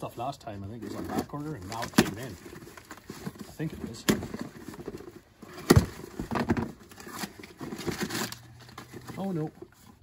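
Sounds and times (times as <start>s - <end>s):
packaging rustling and crinkling: 0.7s - 10.0s.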